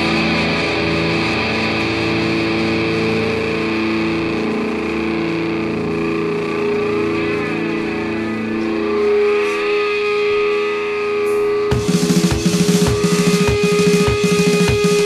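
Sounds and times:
distorted electric guitar chords: 0:00.0 - 0:15.0.

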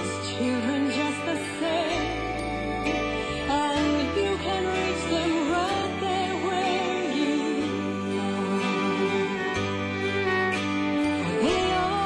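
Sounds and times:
instrumental accompaniment: 0:00.0 - 0:12.0
woman singing with vibrato: 0:00.0 - 0:12.0.

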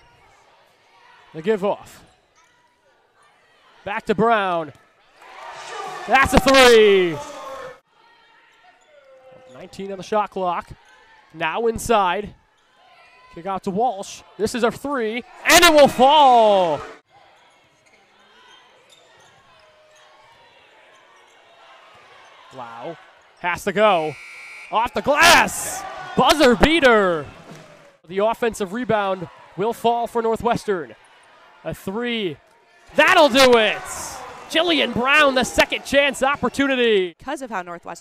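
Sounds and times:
arena ambience: 0:13.4 - 0:17.0, 0:22.1 - 0:37.2.

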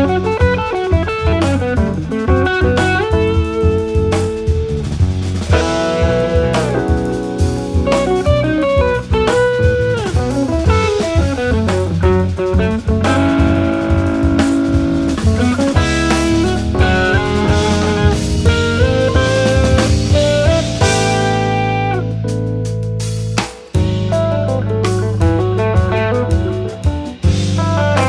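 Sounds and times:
electric guitar melody: 0:00.0 - 0:28.0
jazz rock band playing: 0:00.0 - 0:28.0.

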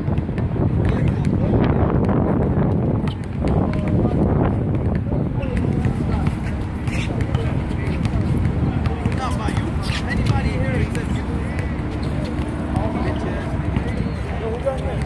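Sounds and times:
steady low rumble: 0:00.0 - 0:14.4
basketball bouncing on court: 0:00.0 - 0:15.0
players' voices: 0:00.1 - 0:15.0
shoe squeaks: 0:03.0 - 0:03.4, 0:05.4 - 0:08.2, 0:09.2 - 0:15.0.

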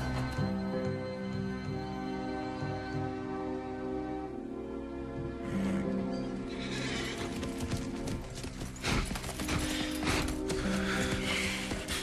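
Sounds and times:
film score music: 0:00.0 - 0:12.0
horse neighing: 0:05.4 - 0:07.3
horse hooves clopping on stones: 0:06.6 - 0:12.0.

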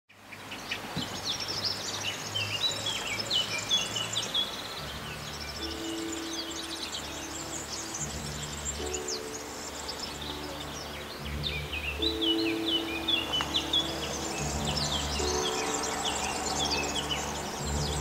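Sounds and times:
low sustained notes: 0:00.1 - 0:18.0
birds chirping and singing: 0:00.2 - 0:18.0.

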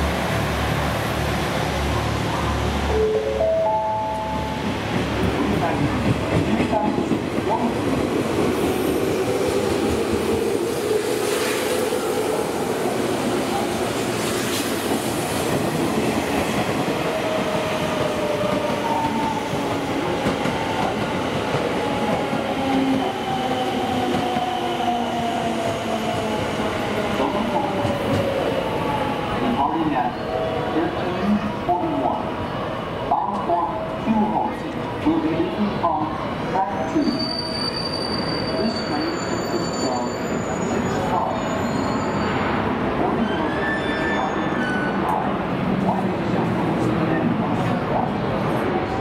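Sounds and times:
passing electric train: 0:00.0 - 0:49.0.

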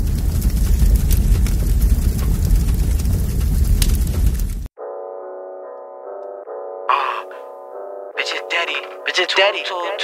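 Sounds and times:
deep rumble with crackling: 0:00.0 - 0:04.7
sharp crackles: 0:00.0 - 0:04.7.

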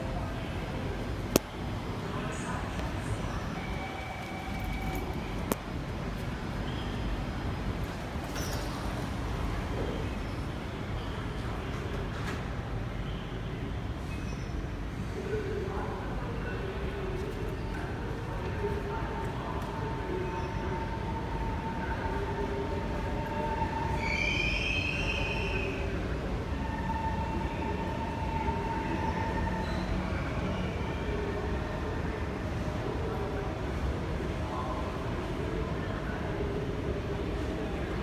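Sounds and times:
train low rumble: 0:00.0 - 0:38.0.

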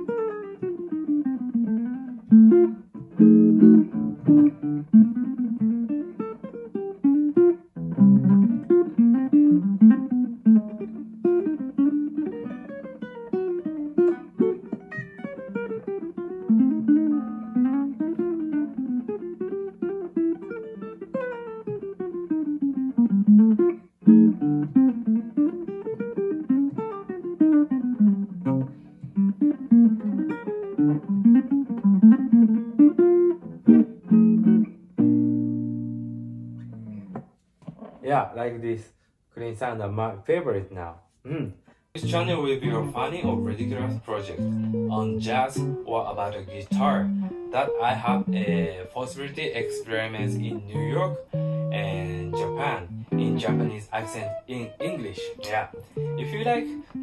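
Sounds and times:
clean electric guitar jazz lines: 0:00.0 - 0:38.1, 0:41.2 - 0:57.0.

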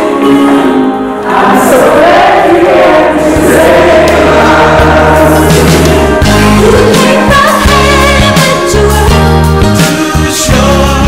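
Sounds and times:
children's choir singing: 0:00.0 - 0:08.8.

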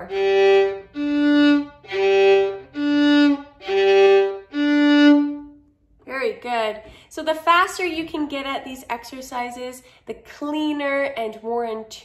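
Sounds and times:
violin bow strokes: 0:00.0 - 0:05.6.

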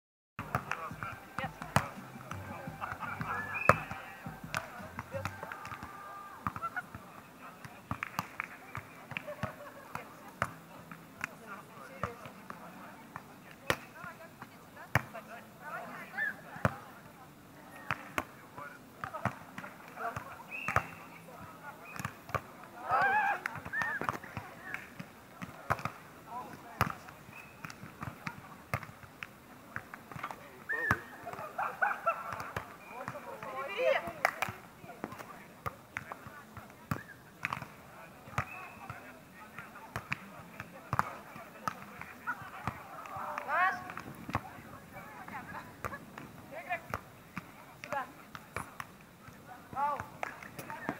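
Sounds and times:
hands slapping volleyball: 0:00.4 - 0:05.9, 0:07.9 - 0:11.4, 0:21.9 - 0:30.4, 0:33.4 - 0:38.6, 0:40.9 - 0:44.4, 0:45.3 - 0:49.0, 0:49.7 - 0:50.9
players shouting: 0:01.2 - 0:06.6, 0:22.8 - 0:23.6.

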